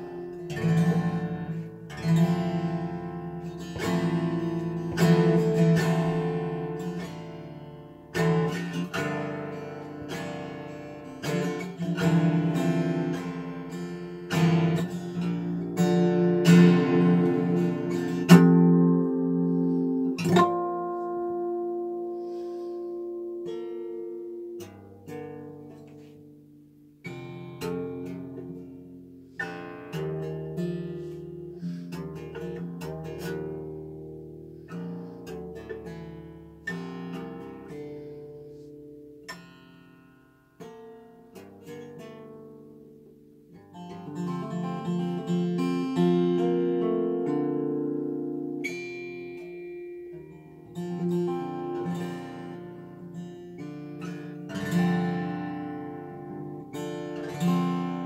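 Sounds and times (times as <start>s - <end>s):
acoustic guitar jazz piece: 0.0s - 58.0s.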